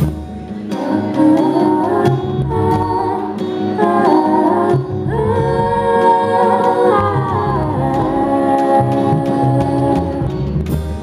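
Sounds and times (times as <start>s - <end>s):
indie rock band playing: 0.0s - 11.0s
voices singing in harmony: 0.6s - 10.6s.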